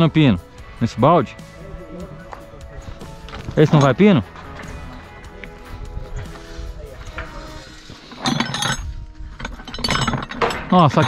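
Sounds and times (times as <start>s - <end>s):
background music: 0.0s - 11.0s
metal pipe panels clanking: 7.1s - 11.0s.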